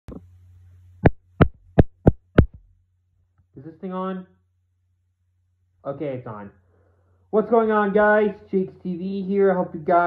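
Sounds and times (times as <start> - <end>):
low steady hum: 0.1 - 10.0
fingers tapping on microphone: 1.0 - 2.7.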